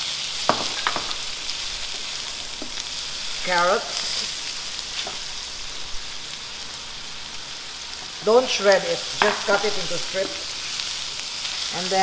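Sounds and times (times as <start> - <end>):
vegetables sizzling in hot oil: 0.0 - 12.0.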